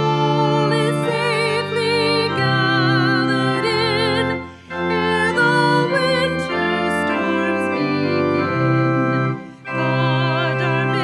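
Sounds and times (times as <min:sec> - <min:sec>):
woman singing: 0:00.0 - 0:08.7, 0:09.8 - 0:11.0
church organ playing hymn chords: 0:00.0 - 0:11.0.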